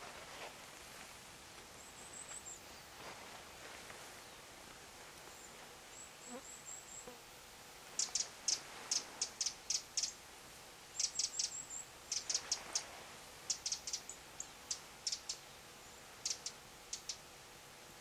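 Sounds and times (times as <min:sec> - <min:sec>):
bird high chirps: 0:08.0 - 0:10.2, 0:11.0 - 0:12.5, 0:13.5 - 0:15.4.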